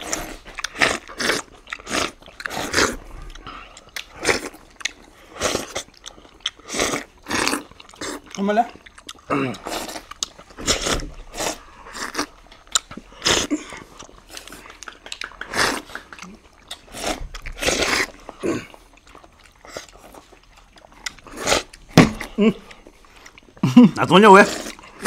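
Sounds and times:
people slurping pudding: 0:00.0 - 0:25.0.

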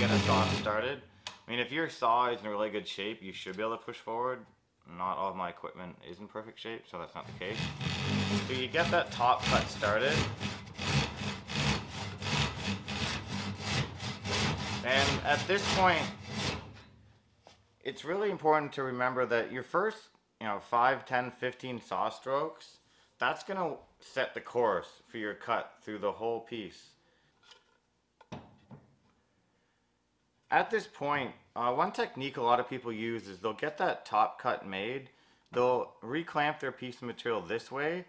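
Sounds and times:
hand saw rasping through wood: 0:00.0 - 0:00.8, 0:07.2 - 0:16.8.

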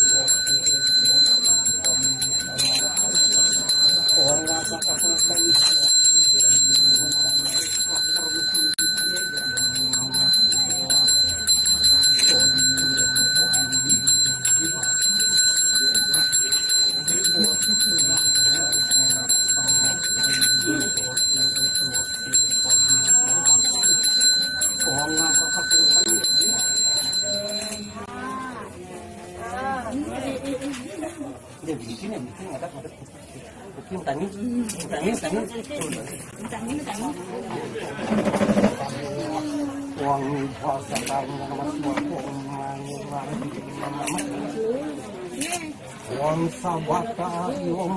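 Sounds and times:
handbell ringing: 0:00.0 - 0:28.1
low voice chanting prayers: 0:00.0 - 0:30.1, 0:38.5 - 0:47.9.

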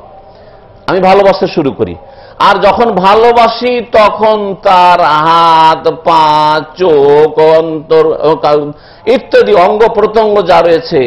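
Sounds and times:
man chanting through microphone: 0:00.9 - 0:11.0.

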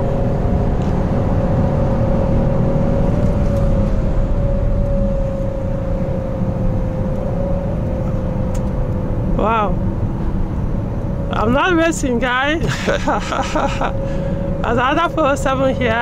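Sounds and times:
car engine hum: 0:00.0 - 0:16.0
road and tyre rumble: 0:00.0 - 0:16.0.

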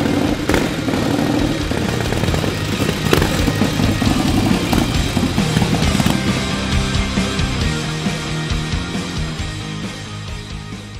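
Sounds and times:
motorcycle engine running: 0:00.0 - 0:09.4
rock music: 0:00.0 - 0:10.9.

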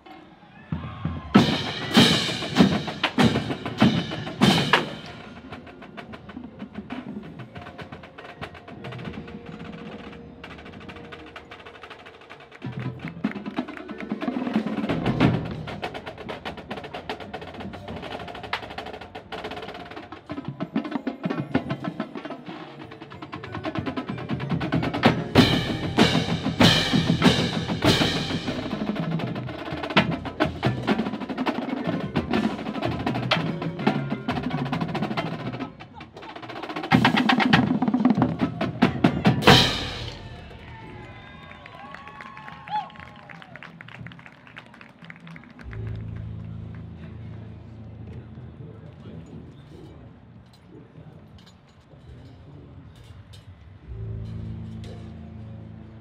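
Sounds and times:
snare drums: 0:00.8 - 0:41.2.

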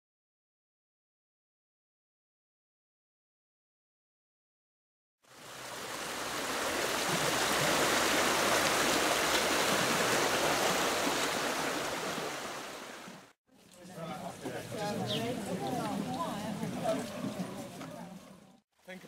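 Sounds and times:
river water rushing: 0:05.3 - 0:13.3.

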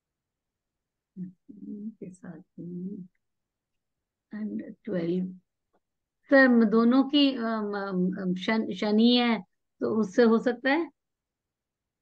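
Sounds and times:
woman speaking over video call: 0:01.2 - 0:03.2, 0:04.2 - 0:11.1.

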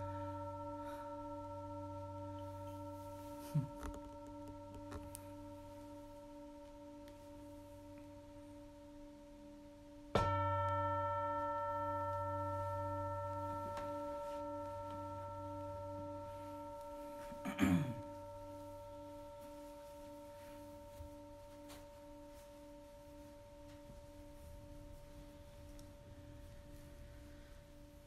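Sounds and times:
singing bowl ringing: 0:00.0 - 0:28.0.

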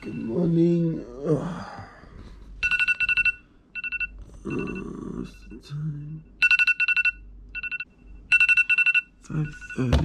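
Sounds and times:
phone alarm beeping: 0:00.0 - 0:00.6, 0:02.6 - 0:05.6, 0:06.4 - 0:10.0.

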